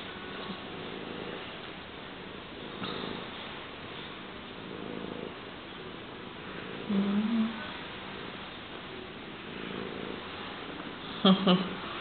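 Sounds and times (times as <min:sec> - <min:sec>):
cat purring: 0:00.0 - 0:12.0.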